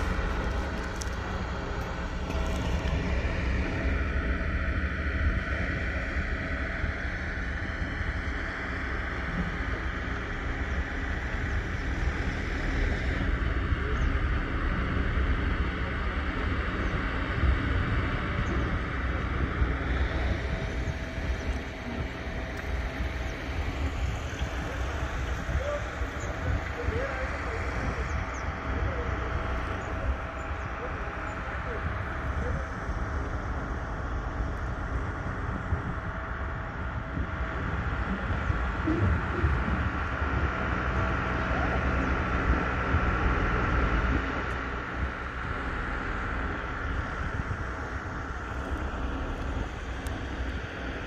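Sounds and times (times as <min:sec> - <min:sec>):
low engine rumble: 0:00.0 - 0:51.0
wind noise on microphone: 0:00.0 - 0:51.0.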